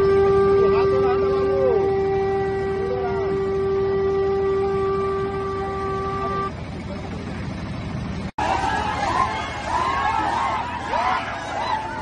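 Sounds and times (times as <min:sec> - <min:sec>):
conch shell blown: 0:00.0 - 0:06.6.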